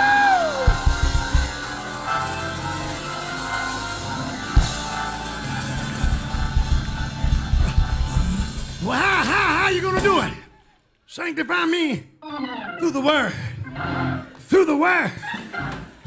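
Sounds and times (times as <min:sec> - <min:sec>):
drum hits: 0:00.0 - 0:02.2, 0:04.5 - 0:10.4
church band music: 0:00.0 - 0:10.5, 0:12.8 - 0:14.9.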